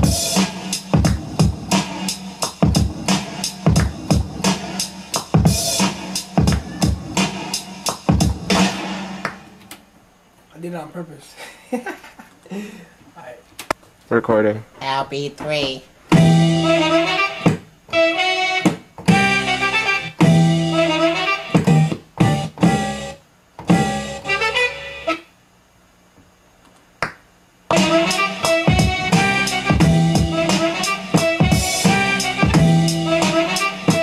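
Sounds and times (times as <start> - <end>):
chopped music samples: 0.0 - 9.8, 16.1 - 25.2, 27.7 - 34.0.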